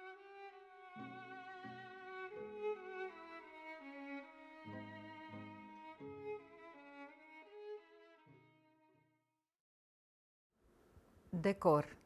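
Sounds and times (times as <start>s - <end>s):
slow bowed-string music: 0.0s - 9.3s.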